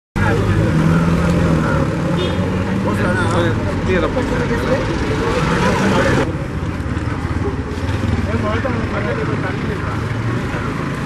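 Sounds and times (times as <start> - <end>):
people talking: 0.2 - 11.0.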